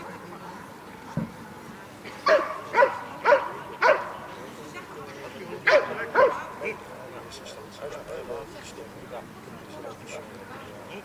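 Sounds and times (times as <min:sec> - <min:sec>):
dog barking: 0:02.2 - 0:04.1, 0:05.7 - 0:06.5.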